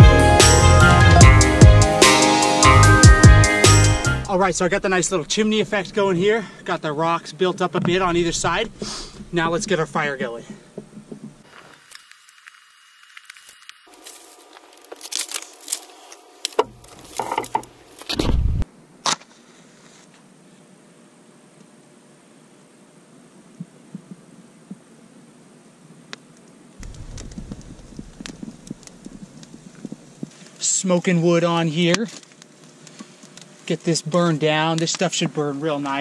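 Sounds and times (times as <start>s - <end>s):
dry grass and sticks rustling: 10.5s - 18.2s, 26.8s - 36.0s
sticks snapping: 11.7s - 18.2s.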